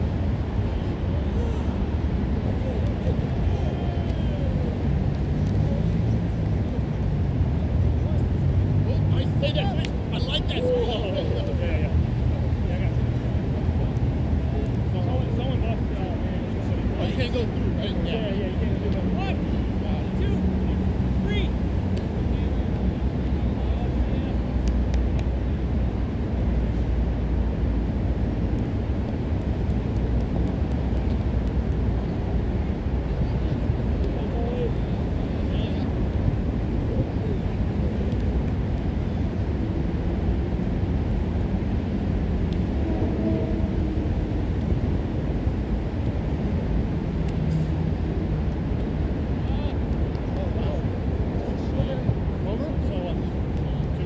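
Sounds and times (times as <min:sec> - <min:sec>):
low outdoor rumble: 0:00.0 - 0:54.0
players shouting: 0:01.2 - 0:04.9, 0:09.0 - 0:11.6.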